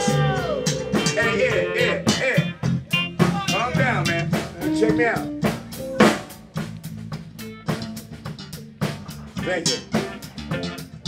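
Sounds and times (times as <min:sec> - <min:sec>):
electric guitar bending notes: 0:00.0 - 0:06.6, 0:07.4 - 0:11.0
drum kit: 0:00.0 - 0:11.0
electric bass: 0:00.0 - 0:11.0.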